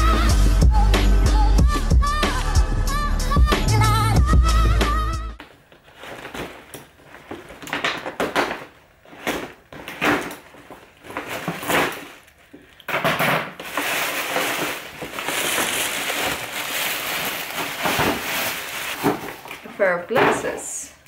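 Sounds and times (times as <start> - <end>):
tissue paper and paper bag rustling: 5.8 - 7.7, 13.6 - 20.8.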